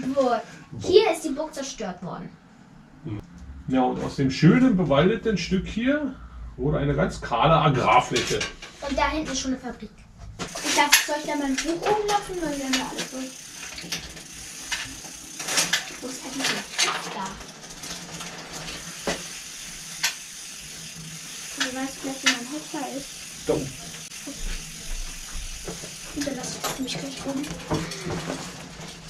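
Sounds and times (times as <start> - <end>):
low murmured words: 3.0 - 3.2.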